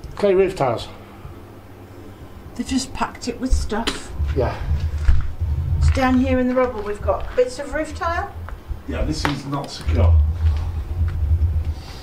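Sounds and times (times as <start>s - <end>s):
steady low rumble: 1.3s - 12.0s.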